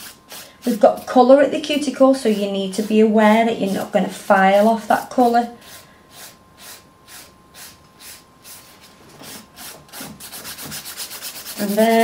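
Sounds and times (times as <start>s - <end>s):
nail file rasping on nail: 10.2s - 12.0s.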